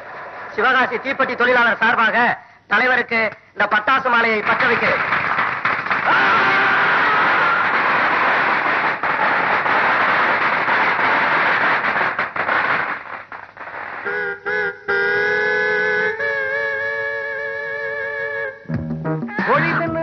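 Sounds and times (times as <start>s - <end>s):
firecrackers crackling: 4.2s - 16.3s
music with held notes: 18.6s - 20.0s.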